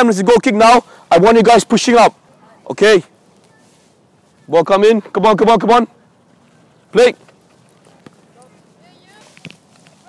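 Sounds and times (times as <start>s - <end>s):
distant children calling: 1.8s - 10.0s.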